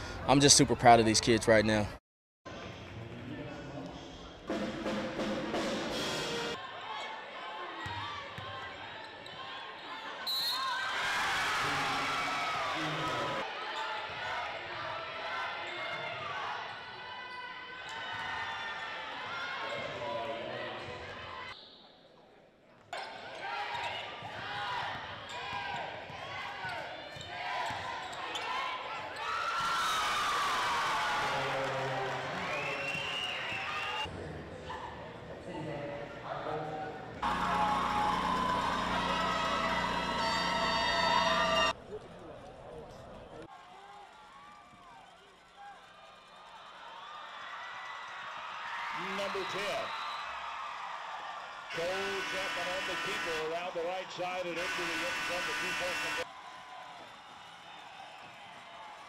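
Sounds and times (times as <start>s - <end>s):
voices of players and crowd: 0.0s - 4.7s, 6.0s - 59.0s.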